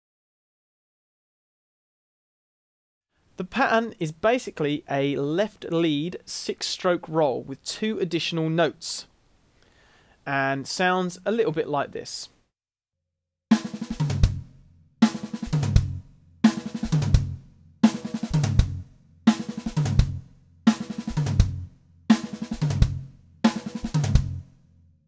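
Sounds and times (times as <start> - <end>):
drum kit fill: 13.5 - 24.5.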